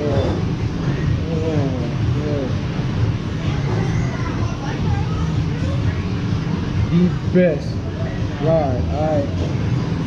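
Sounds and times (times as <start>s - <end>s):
faint voices chattering: 0.0s - 10.0s.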